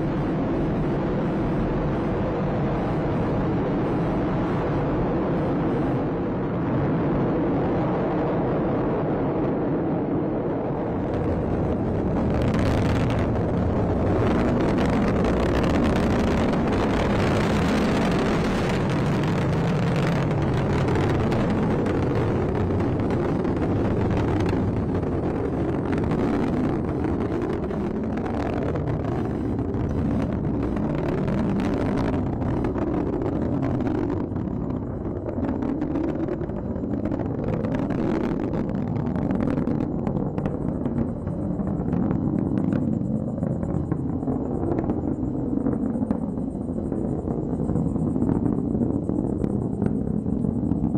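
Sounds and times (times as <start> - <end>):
rocket engine deep rumble: 0.0 - 50.9.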